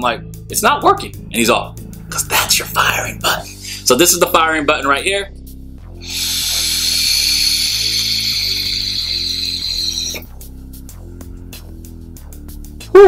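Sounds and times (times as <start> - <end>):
background music: 0.0 - 13.0
vape draw hiss: 6.0 - 10.3.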